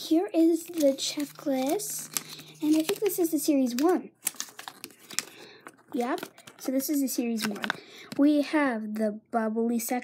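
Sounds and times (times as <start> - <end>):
paper and cardboard ticks and taps: 0.7 - 5.3.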